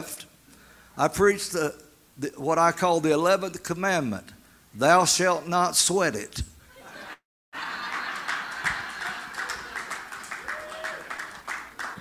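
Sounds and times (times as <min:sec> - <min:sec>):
people clapping: 0:07.6 - 0:12.0.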